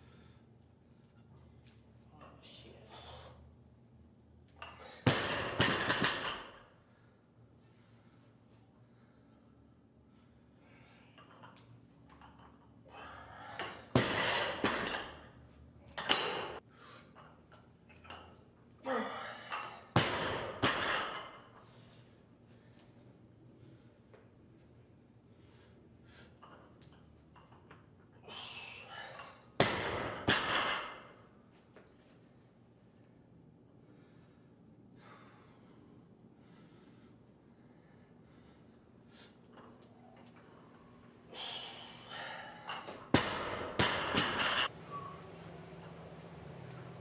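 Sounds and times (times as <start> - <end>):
barbell dropping on platform: 5.1 - 6.5, 13.9 - 15.2, 29.6 - 31.0, 43.1 - 44.7
bar and plates rattling: 42.8 - 44.7.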